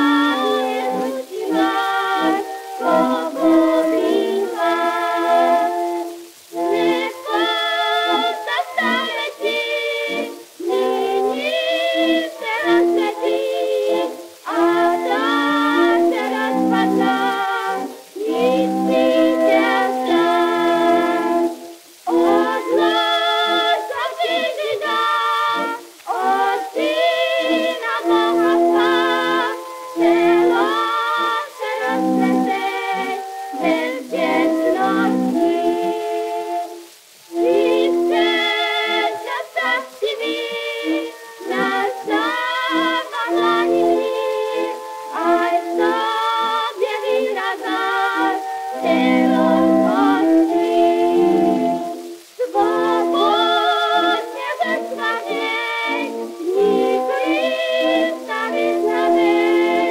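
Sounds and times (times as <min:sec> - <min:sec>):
organ accompaniment: 0:00.0 - 0:59.9
two women singing duet: 0:00.0 - 0:59.9.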